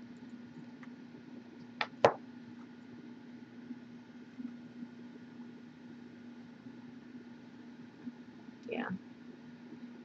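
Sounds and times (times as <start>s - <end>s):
low electrical hum: 0.0s - 10.0s.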